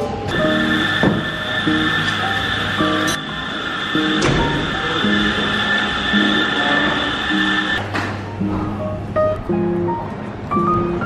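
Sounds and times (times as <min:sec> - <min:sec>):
steady high tone: 0:00.3 - 0:07.8.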